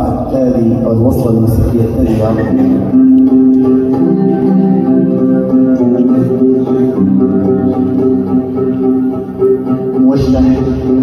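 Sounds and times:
oud melody: 0.0 - 11.0.

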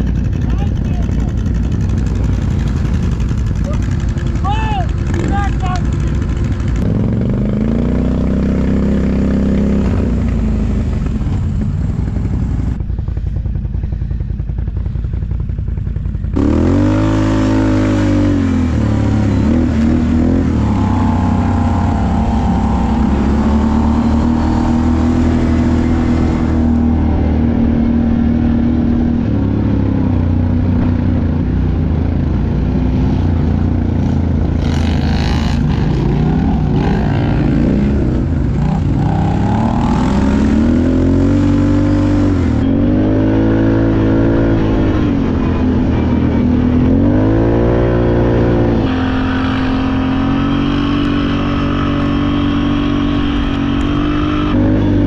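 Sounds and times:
atv engines revving: 0.0 - 55.0.

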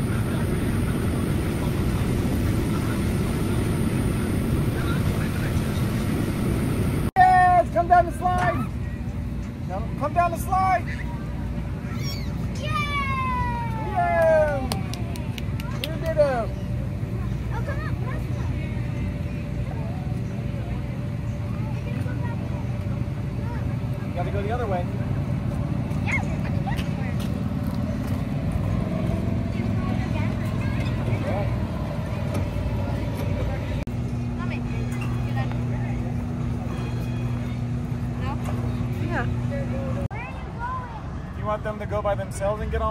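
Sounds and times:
machinery humming: 0.0 - 40.1
low background hubbub: 0.0 - 42.9
voices of children and adults: 7.2 - 42.9
child squealing: 11.9 - 14.0.

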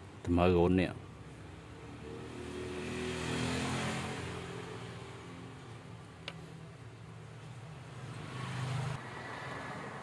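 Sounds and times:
vehicle engine driving past: 1.8 - 5.6, 8.0 - 10.0.

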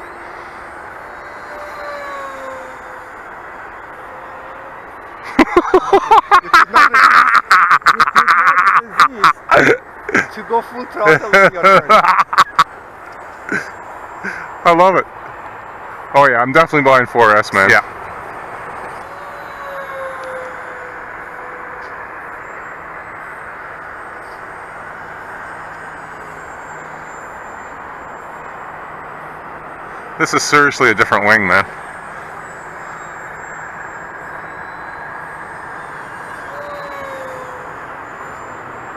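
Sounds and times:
distant electric motor whine: 0.0 - 38.9
hearty laughter: 5.2 - 10.4, 11.1 - 12.7, 13.5 - 14.5.

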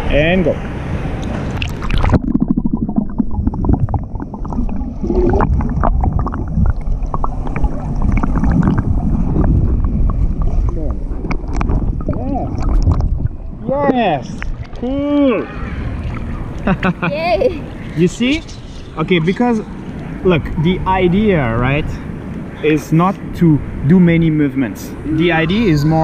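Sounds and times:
muffled underwater swimming strokes: 0.7 - 16.8.

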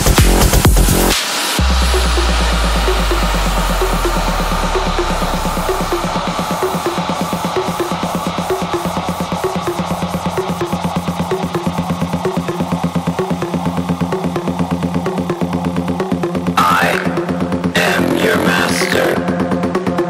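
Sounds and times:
electronic dance music: 0.0 - 20.0.

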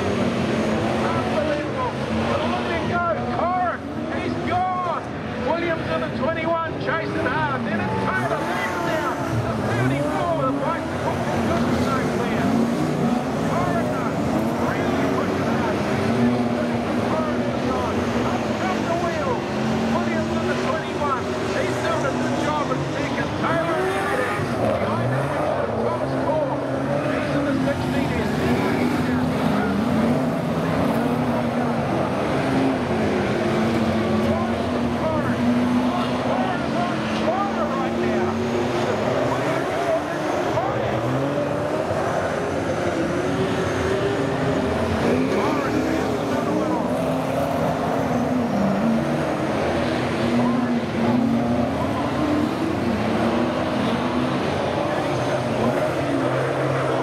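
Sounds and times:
racing car engines: 0.0 - 57.0.

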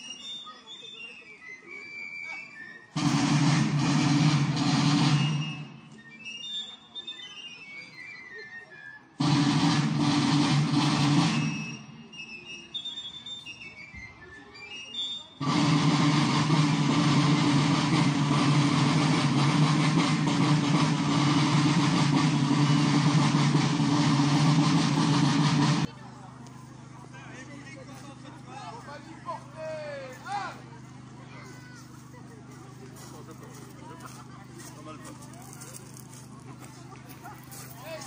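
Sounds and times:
snare drum roll: 3.0 - 6.0, 9.2 - 12.0, 15.4 - 25.9.

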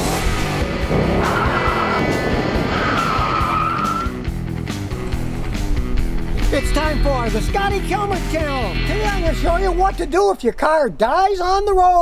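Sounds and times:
car engine: 0.0 - 9.4
car tires squealing: 0.7 - 4.3.

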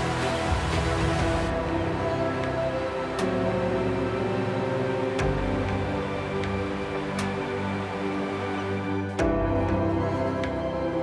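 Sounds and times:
background music of sustained chords: 0.0 - 11.0.

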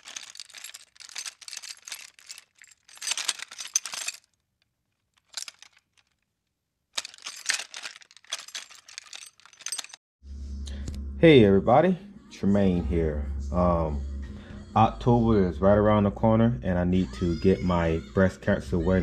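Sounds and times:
crackling clinking noise bursts: 0.0 - 4.4, 7.0 - 10.0
music with deep bass note: 10.2 - 16.2.

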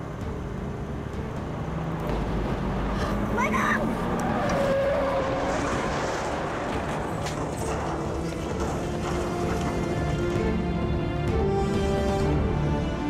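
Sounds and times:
tyres screeching: 3.0 - 10.4.

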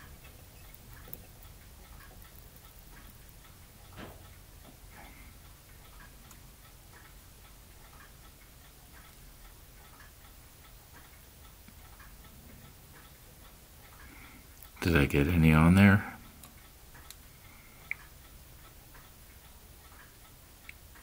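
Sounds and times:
faint even ticking: 0.0 - 21.0.

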